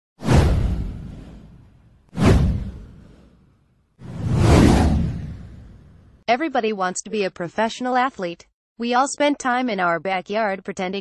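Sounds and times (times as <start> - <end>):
whoosh sound effects: 0.2 - 6.2.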